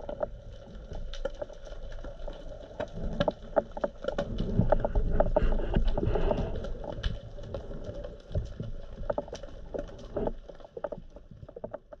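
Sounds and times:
underwater rumble of moving water: 0:00.0 - 0:12.0.

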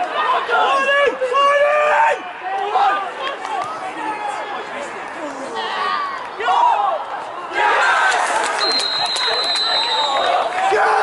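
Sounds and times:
referee's whistle long blast: 0:08.6 - 0:10.4.

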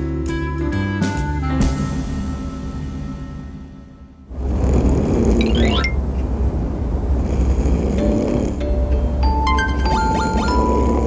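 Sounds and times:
background music with deep bass: 0:00.0 - 0:04.2
deep slow snoring: 0:04.3 - 0:05.8, 0:07.0 - 0:08.9, 0:10.3 - 0:11.0
chiming notes: 0:05.4 - 0:06.0, 0:08.4 - 0:11.0.

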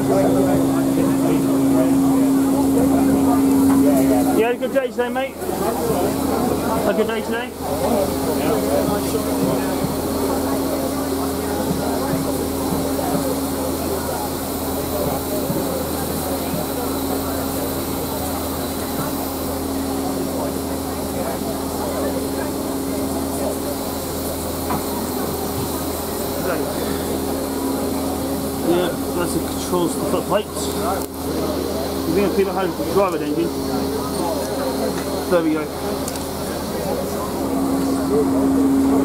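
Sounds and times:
steam hissing and roaring: 0:00.0 - 0:39.0.

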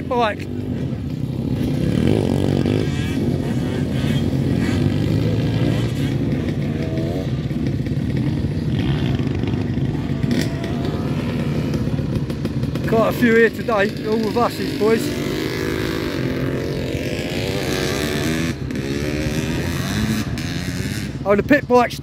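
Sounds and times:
dirt bike engines revving: 0:00.0 - 0:22.0.

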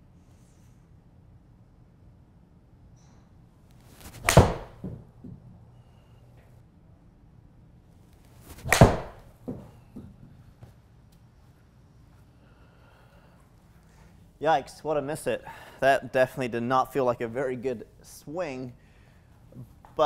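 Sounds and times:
golf club striking ball: 0:04.2 - 0:05.0.

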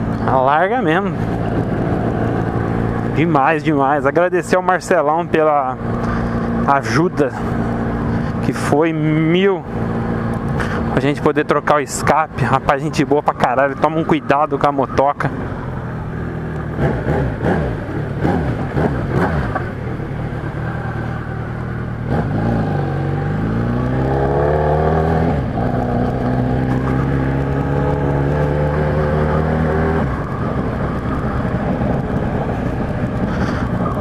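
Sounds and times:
motorcycle engine accelerating: 0:00.0 - 0:12.6, 0:13.4 - 0:34.0.

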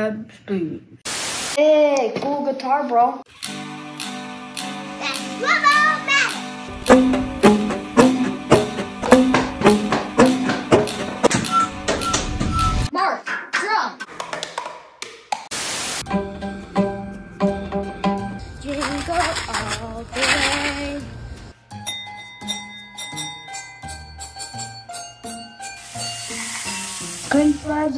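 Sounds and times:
homemade instruments over backing song: 0:03.5 - 0:11.8, 0:16.0 - 0:18.6
tuned tubes struck with paddles: 0:06.3 - 0:12.6.

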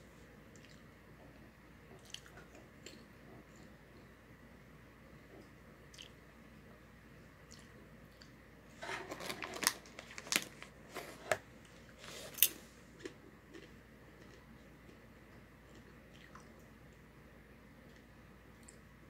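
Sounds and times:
chewing popcorn: 0:01.9 - 0:03.0, 0:12.2 - 0:17.1
plastic bag crinkling: 0:08.8 - 0:11.4.

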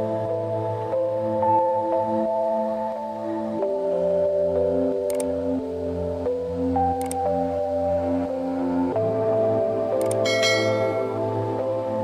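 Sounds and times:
ambient background music: 0:00.0 - 0:12.0
click: 0:05.1 - 0:05.3, 0:07.0 - 0:07.2, 0:10.0 - 0:10.2
bright bell chime: 0:10.2 - 0:11.2.

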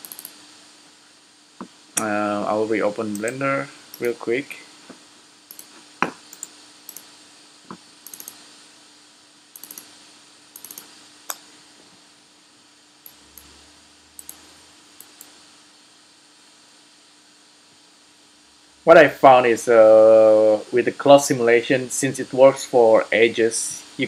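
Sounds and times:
mouse and keyboard clicks: 0:00.0 - 0:00.4, 0:04.0 - 0:04.2, 0:05.5 - 0:05.7, 0:08.1 - 0:08.4, 0:09.6 - 0:09.9, 0:10.6 - 0:11.4
faint steady hum: 0:00.0 - 0:24.0.

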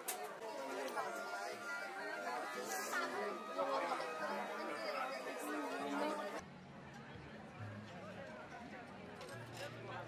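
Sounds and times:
overlapping chatter: 0:00.0 - 0:10.0.

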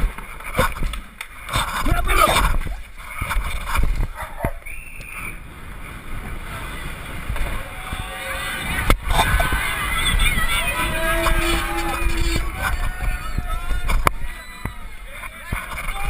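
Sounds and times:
spectators yelling and cheering: 0:06.3 - 0:16.0
horn held: 0:10.8 - 0:13.2.

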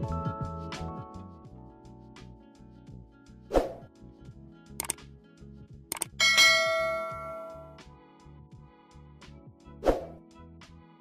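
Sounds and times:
quiet background music: 0:00.0 - 0:11.0
double mouse click: 0:04.8 - 0:05.0, 0:05.9 - 0:06.2
bright bell ding: 0:06.2 - 0:07.8.

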